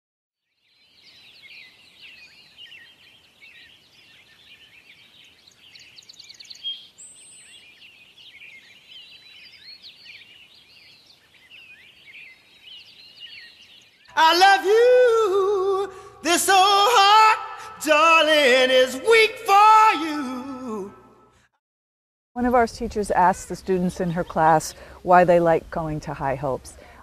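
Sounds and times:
songbirds chirping and singing: 0:00.5 - 0:21.2.

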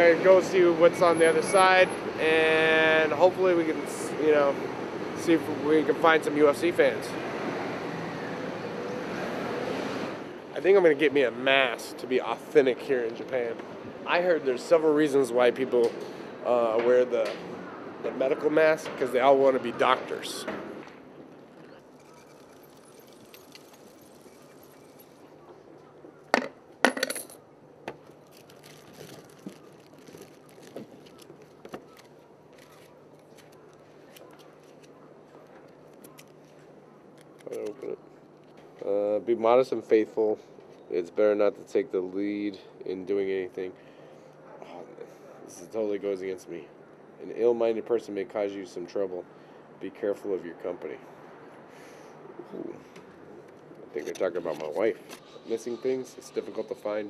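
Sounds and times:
paper rustling: 0:28.1 - 0:38.6.

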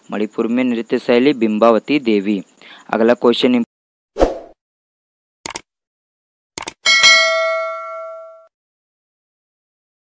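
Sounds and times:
notification bell ding: 0:06.9 - 0:08.5.

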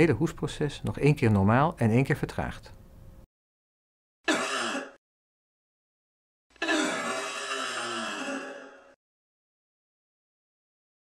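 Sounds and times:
person coughing: 0:04.3 - 0:05.0, 0:06.6 - 0:09.0.

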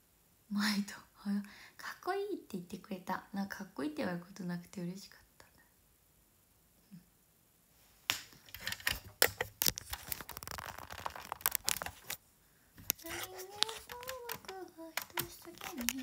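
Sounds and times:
phone being handled: 0:08.1 - 0:12.2, 0:12.8 - 0:16.0.

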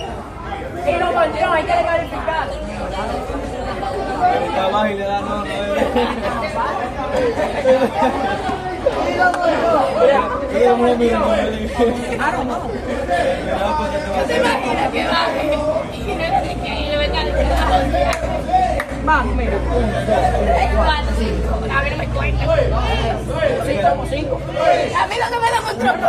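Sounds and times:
chatter of people talking: 0:00.0 - 0:26.0.

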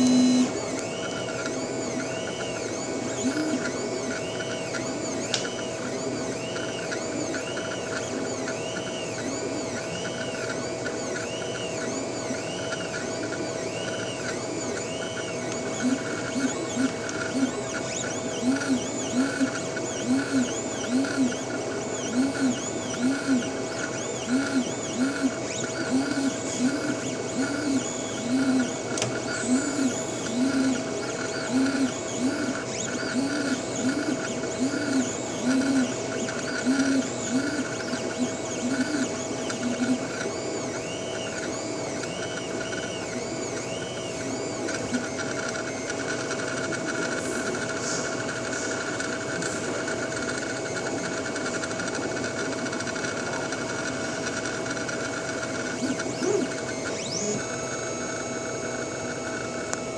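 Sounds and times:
steady machine hum: 0:00.0 - 0:59.9
stepper motors whining: 0:00.0 - 0:59.9.

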